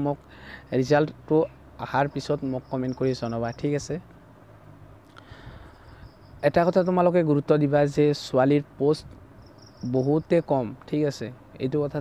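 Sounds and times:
faint high steady tone: 0.0s - 4.0s, 5.5s - 7.5s, 9.4s - 10.8s
man talking: 0.0s - 4.1s, 6.4s - 9.2s, 9.8s - 12.0s.

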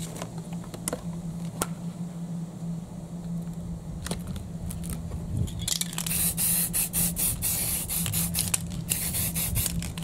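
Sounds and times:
spray paint can hissing: 6.0s - 10.0s.

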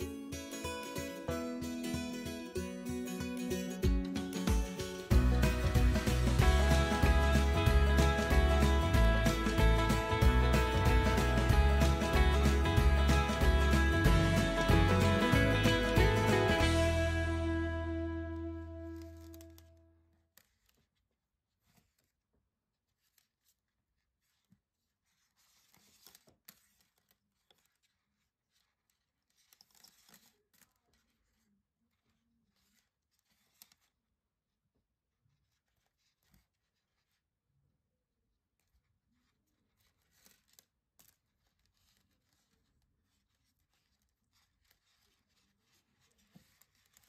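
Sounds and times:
background music: 0.0s - 19.6s.

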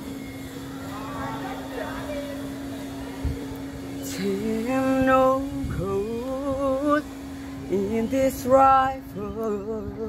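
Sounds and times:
faint distant voices: 0.0s - 10.0s
low hum: 0.0s - 10.0s.

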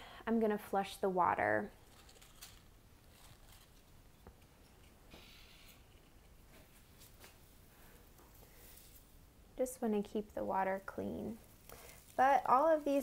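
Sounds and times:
faint rustles of foliage: 1.7s - 9.3s, 11.4s - 13.0s.

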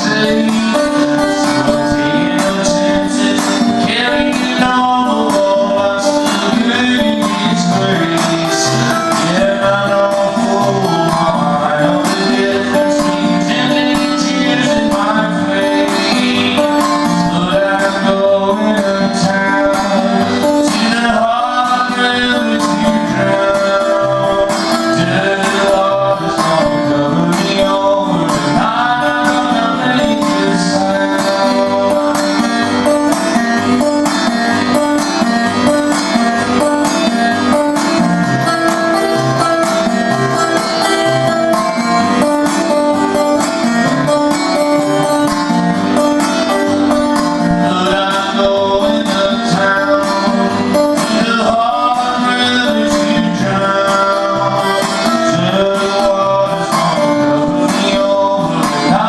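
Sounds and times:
acoustic guitar picking blues: 0.0s - 59.0s.

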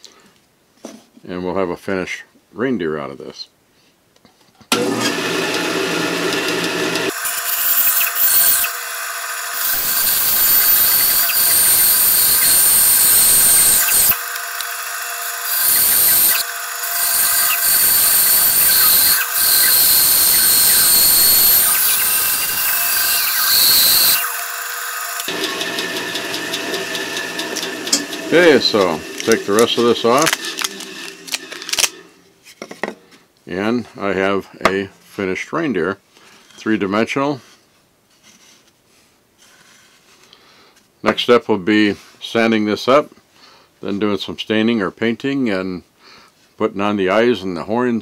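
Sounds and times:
band saw running: 4.7s - 32.3s
saw blade cutting wood: 4.7s - 32.3s.

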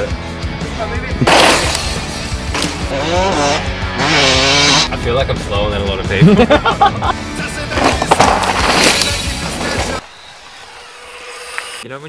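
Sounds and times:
music: 0.0s - 10.1s
bike tyres skidding on dirt: 7.5s - 11.8s.

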